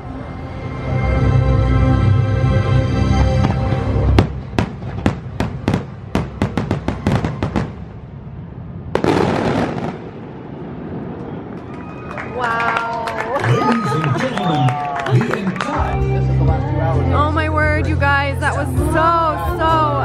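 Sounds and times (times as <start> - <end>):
fireworks bangs: 3.4 - 15.4
fireworks crackling burst: 4.2 - 8.0, 8.8 - 12.2
show music: 13.2 - 20.0.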